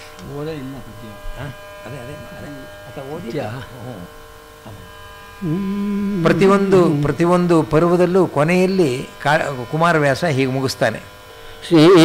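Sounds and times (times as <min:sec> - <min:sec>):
steady electrical buzz: 0:00.0 - 0:12.0
man speaking: 0:00.2 - 0:04.1, 0:04.7 - 0:11.0.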